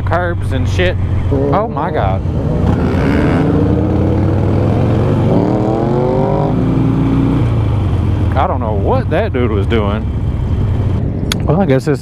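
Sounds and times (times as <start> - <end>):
motorcycle engine revving: 0.0 - 11.1
motorcycle engines rumbling: 0.0 - 12.0.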